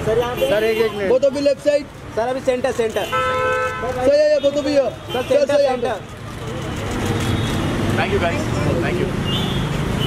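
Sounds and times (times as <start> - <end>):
street traffic noise: 0.0 - 10.0
vehicle engine rumbling: 0.0 - 10.0.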